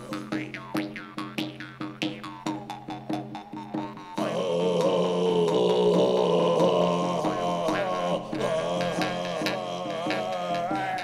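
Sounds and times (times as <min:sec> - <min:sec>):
low drone: 0:04.2 - 0:10.6
man chanting deeply: 0:04.2 - 0:11.0.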